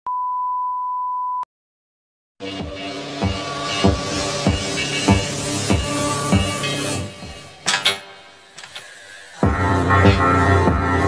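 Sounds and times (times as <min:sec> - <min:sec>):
steady test tone beep: 0:00.1 - 0:01.5.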